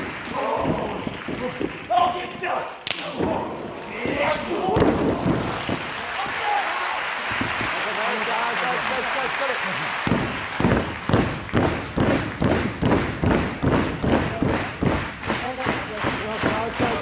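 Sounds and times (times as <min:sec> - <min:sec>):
wrestlers shouting and grunting: 0:00.2 - 0:01.2, 0:01.9 - 0:07.1.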